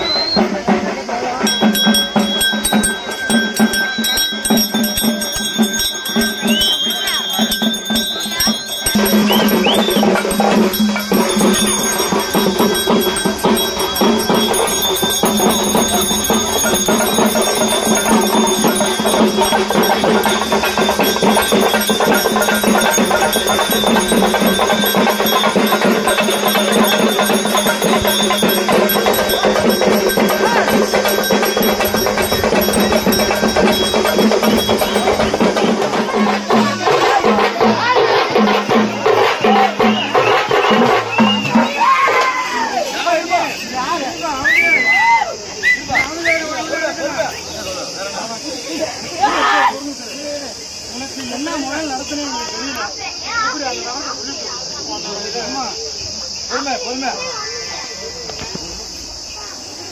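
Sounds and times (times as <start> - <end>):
fast dense drumming: 0.0 - 42.1
ringing bells: 1.0 - 44.8
steady held tone: 1.4 - 36.6.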